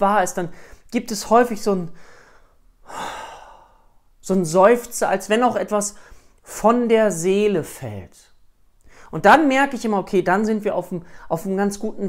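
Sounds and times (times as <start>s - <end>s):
man sighing with relief: 2.8s - 4.1s.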